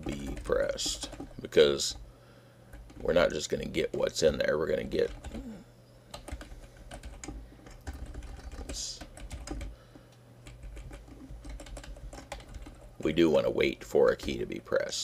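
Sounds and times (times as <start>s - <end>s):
computer keyboard typing: 0.0s - 2.0s, 2.7s - 5.4s, 6.1s - 9.8s, 10.4s - 14.5s.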